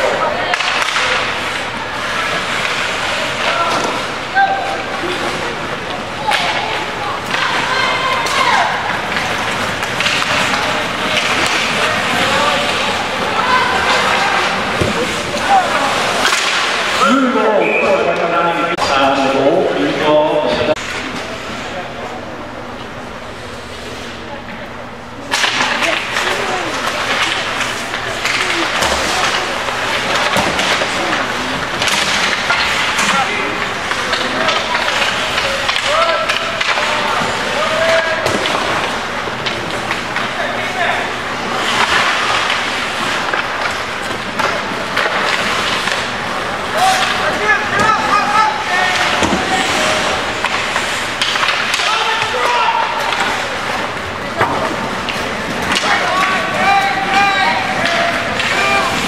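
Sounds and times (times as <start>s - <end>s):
skates scraping ice: 0.0s - 17.8s, 25.3s - 59.0s
people shouting: 3.3s - 5.2s, 6.2s - 17.6s, 34.9s - 38.3s, 46.7s - 50.3s, 51.7s - 53.6s, 55.7s - 59.0s
hockey sticks and puck knocking: 5.0s - 17.1s, 25.3s - 40.9s, 41.5s - 59.0s.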